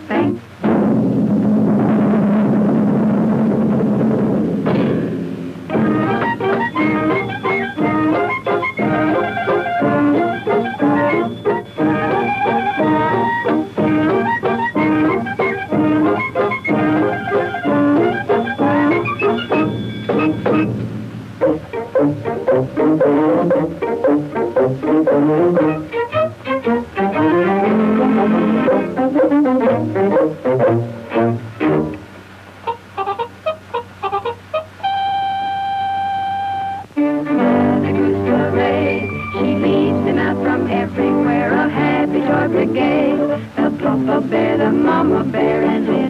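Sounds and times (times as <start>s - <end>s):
orchestral cartoon music: 0.0s - 46.0s.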